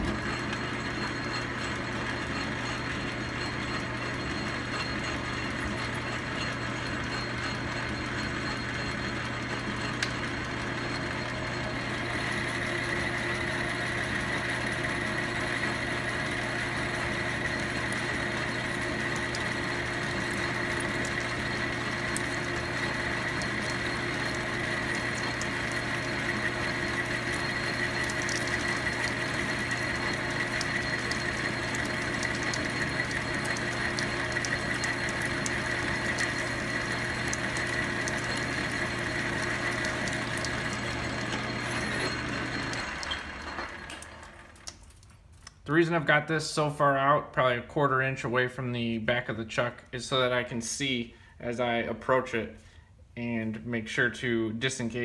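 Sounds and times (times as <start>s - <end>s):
lathe humming with high ring: 0.0s - 44.6s.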